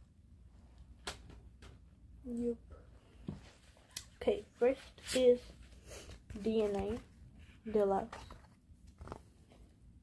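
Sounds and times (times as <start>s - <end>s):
paper booklet rustling: 4.6s - 9.4s.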